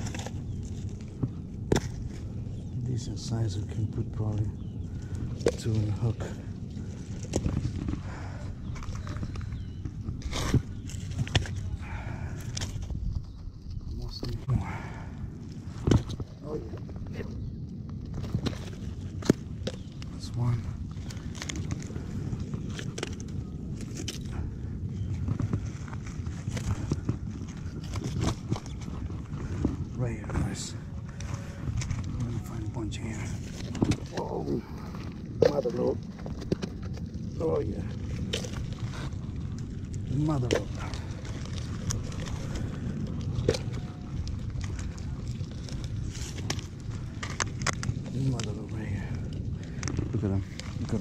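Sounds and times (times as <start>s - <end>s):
low background rumble: 0.0s - 51.0s.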